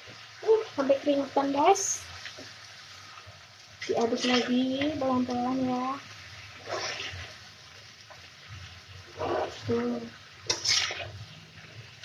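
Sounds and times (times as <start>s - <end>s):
spatula rustling vegetables: 0.0s - 12.0s
vegetables sizzling in a wok: 0.0s - 12.0s.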